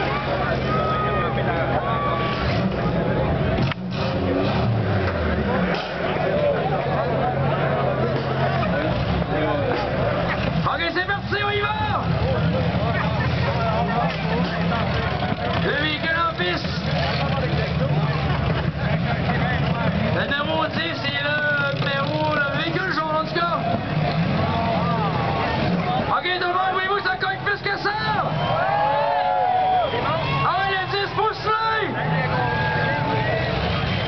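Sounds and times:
voices talking: 0:00.0 - 0:28.7, 0:29.8 - 0:34.0
car engines rumbling: 0:00.0 - 0:34.0.

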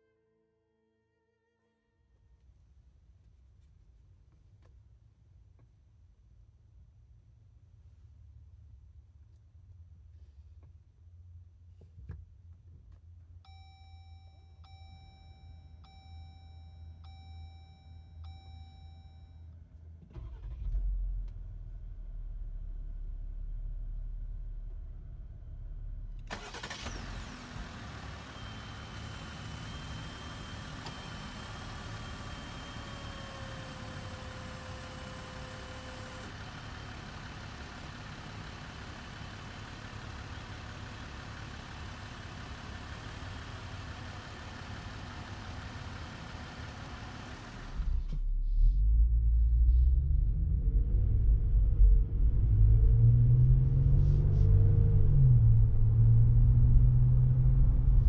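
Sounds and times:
car engine idling: 0:19.8 - 0:48.2
engine accelerating from inside car: 0:20.0 - 0:58.0.

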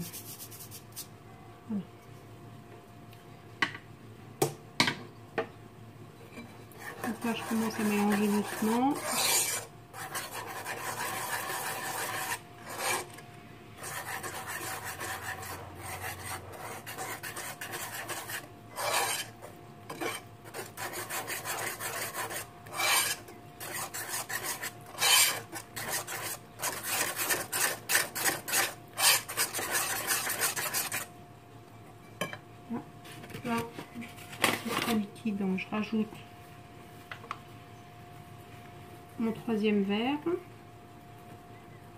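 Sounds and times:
whisk scraping ceramic bowl: 0:06.4 - 0:13.2, 0:13.8 - 0:31.1.

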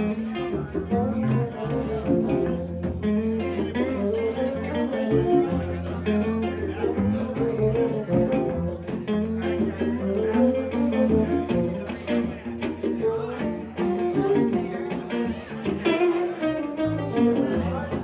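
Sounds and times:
low bass line: 0:00.0 - 0:14.7
acoustic guitar: 0:00.0 - 0:18.0
fiddle: 0:00.0 - 0:18.0.

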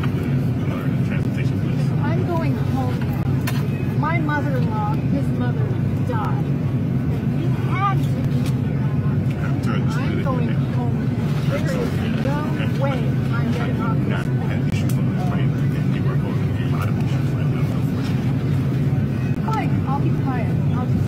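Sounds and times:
airliner cabin drone: 0:00.0 - 0:21.0.

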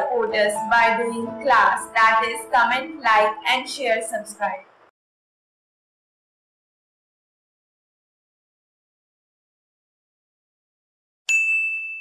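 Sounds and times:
bell-like ding: 0:11.3 - 0:12.0.

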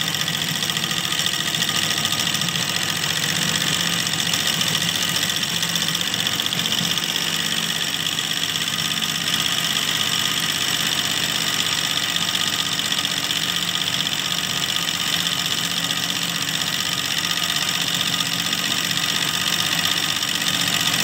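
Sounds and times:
embroidery machine stitching: 0:00.0 - 0:21.0.

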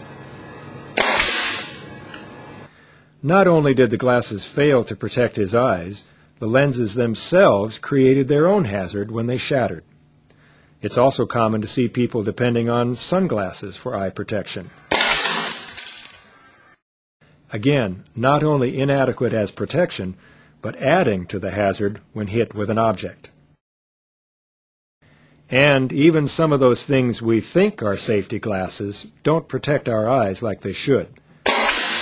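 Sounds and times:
lens shattering: 0:01.0 - 0:01.8, 0:14.9 - 0:16.3, 0:31.5 - 0:32.0
nail gun firing with sharp crack: 0:01.0 - 0:01.9, 0:14.9 - 0:16.4, 0:31.5 - 0:32.0
broken plastic pieces clattering: 0:15.4 - 0:16.3.

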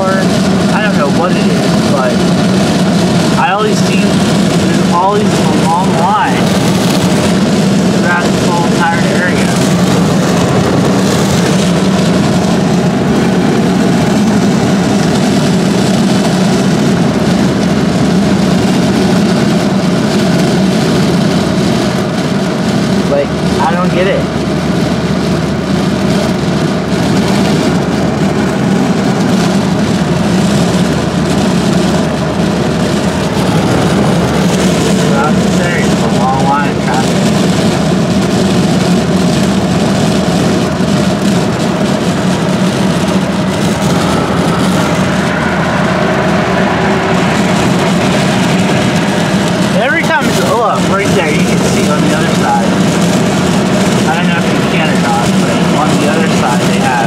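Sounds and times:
car cabin road and engine noise: 0:00.0 - 0:57.0
person speaking: 0:03.4 - 0:06.7, 0:08.0 - 0:09.9, 0:33.2 - 0:37.3, 0:43.8 - 0:52.8.

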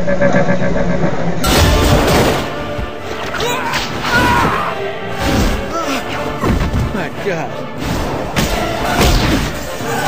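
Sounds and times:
action film music: 0:00.0 - 0:10.0
crashing impact sound effects: 0:01.4 - 0:02.8.

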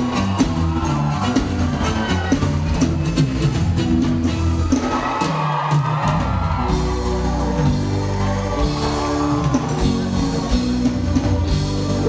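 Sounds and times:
crowd noise: 0:00.0 - 0:12.0
live band playing pop: 0:00.0 - 0:12.0.

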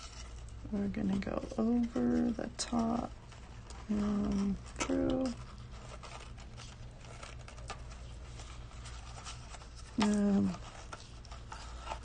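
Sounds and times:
paper being handled: 0:00.0 - 0:12.0
ribbon rustling and scratching: 0:00.0 - 0:12.0.

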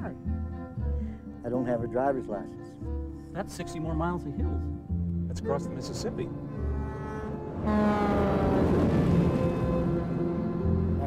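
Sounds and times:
large vehicle passing: 0:06.3 - 0:11.0.

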